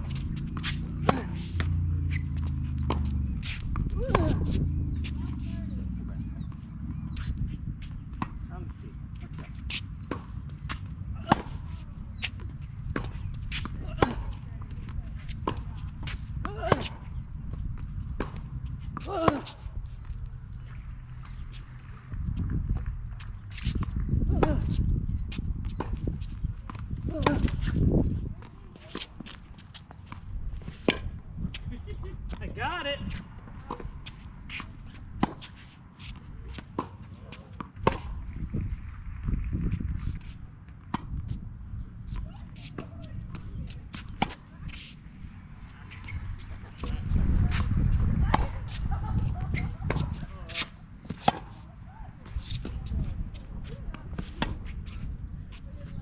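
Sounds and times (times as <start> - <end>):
steady low rumble: 0.0 - 35.4, 37.7 - 56.0
racquets striking tennis ball: 0.0 - 55.6.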